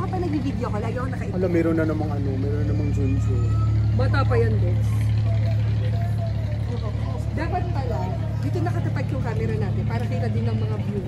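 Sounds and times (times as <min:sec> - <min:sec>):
faint voices: 0:00.0 - 0:11.0
low engine hum: 0:00.0 - 0:11.0.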